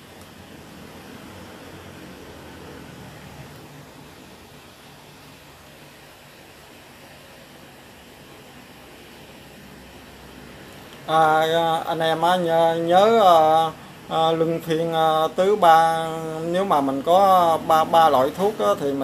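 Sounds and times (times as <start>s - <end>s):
background hiss: 0.0s - 19.0s.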